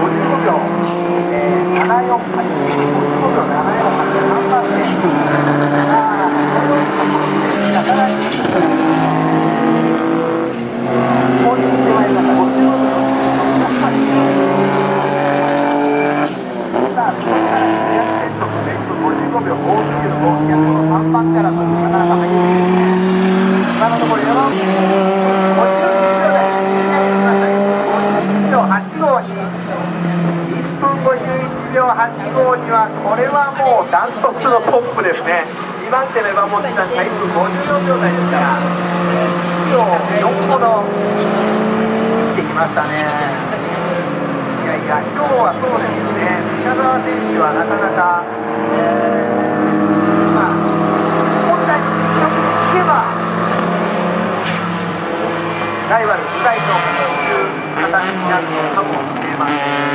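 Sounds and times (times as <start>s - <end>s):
race car engines at full throttle: 0.0s - 59.9s.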